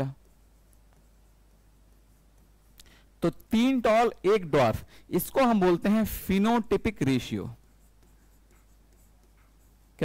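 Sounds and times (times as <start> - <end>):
stylus writing on screen: 0.0 - 10.0.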